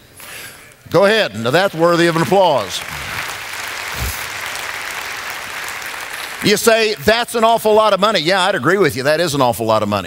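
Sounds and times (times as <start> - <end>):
audience applauding: 1.1 - 8.0.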